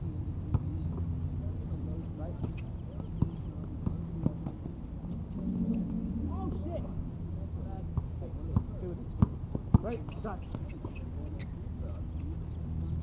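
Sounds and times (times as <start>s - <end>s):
players' voices: 0.0s - 13.0s.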